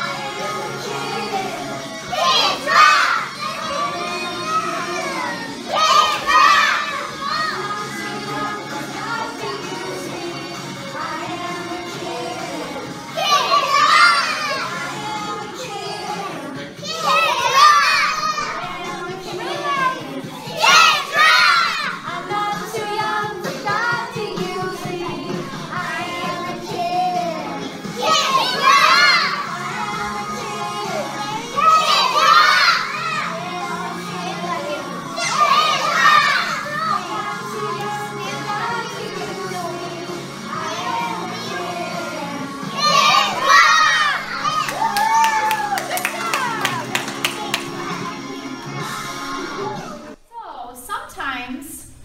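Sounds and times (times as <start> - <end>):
song playing: 0.0 - 50.2
children shouting and singing: 0.0 - 50.3.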